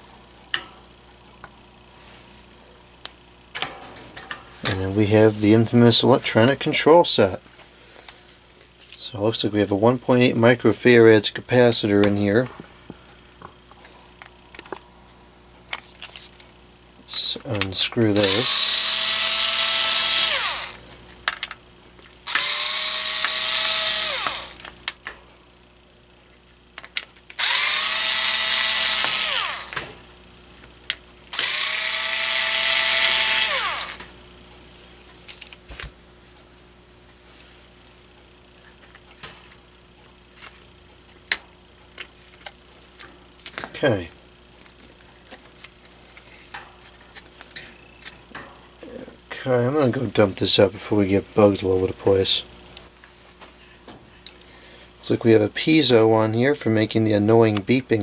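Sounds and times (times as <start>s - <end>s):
electric screwdriver whirring: 18.2s - 20.8s, 22.3s - 24.7s, 27.4s - 29.8s, 31.3s - 34.1s.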